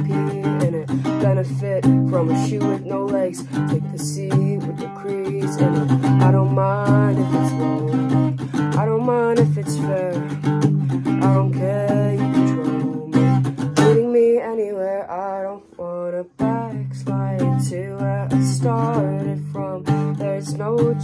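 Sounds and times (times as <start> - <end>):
acoustic guitar strumming: 0.0 - 21.0
person singing: 0.0 - 21.0.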